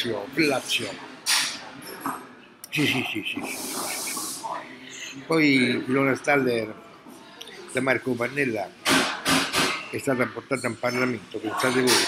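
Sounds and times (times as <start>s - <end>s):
man hissing through teeth: 3.4s - 4.4s.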